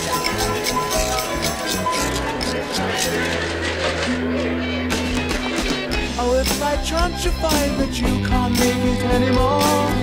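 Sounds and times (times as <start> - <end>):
bass guitar: 0.0 - 10.0
drums: 0.0 - 10.0
piano: 0.0 - 10.0.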